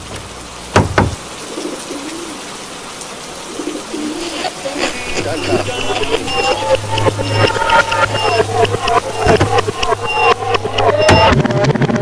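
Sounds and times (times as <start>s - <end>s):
rain hissing: 0.0s - 11.1s
pigeon cooing: 1.4s - 8.1s.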